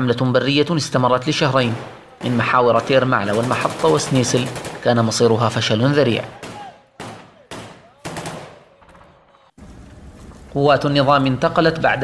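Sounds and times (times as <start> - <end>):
gunshots echoing: 1.6 - 5.6, 6.2 - 9.8.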